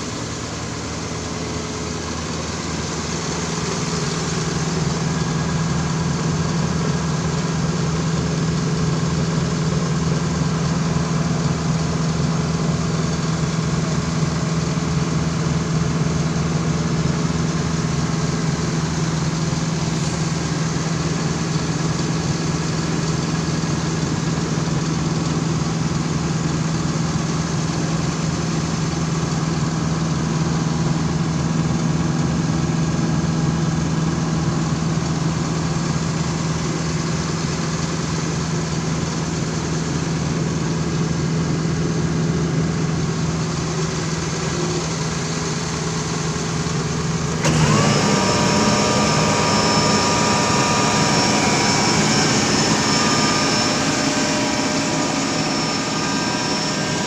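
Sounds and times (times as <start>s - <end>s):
truck engine running steadily: 0.0s - 57.0s.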